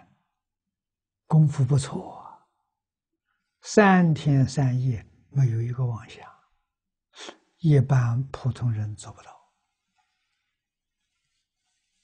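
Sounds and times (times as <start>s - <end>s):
elderly man speaking: 1.3s - 2.5s, 3.6s - 6.6s, 7.2s - 9.5s.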